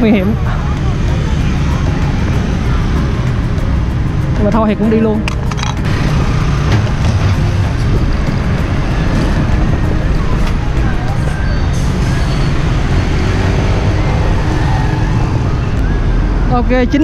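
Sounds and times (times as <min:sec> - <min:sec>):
heavy low rumble: 0:00.0 - 0:17.0
motorbikes passing: 0:00.0 - 0:17.0
truck passing: 0:00.0 - 0:17.0.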